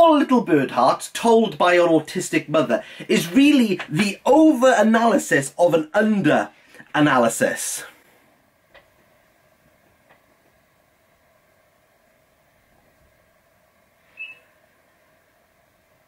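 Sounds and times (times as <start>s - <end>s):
faint steady hum: 0.0s - 16.0s
brief high squeak: 14.1s - 14.6s.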